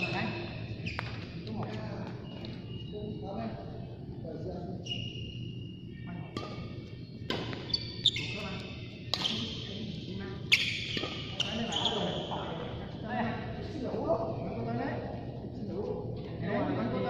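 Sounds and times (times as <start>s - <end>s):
shoes squeaking on court: 0.0s - 3.0s, 7.3s - 9.7s, 10.5s - 12.7s.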